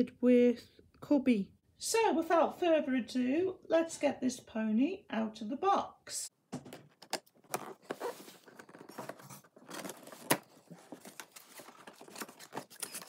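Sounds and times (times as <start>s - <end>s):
cardboard box being opened: 7.4s - 13.0s.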